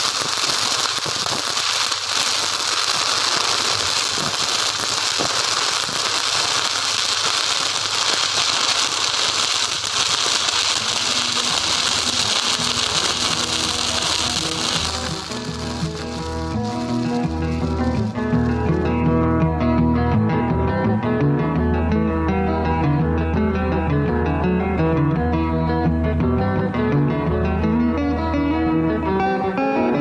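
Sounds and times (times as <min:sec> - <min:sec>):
welding arc crackling: 0:00.0 - 0:18.8
music: 0:07.0 - 0:30.0.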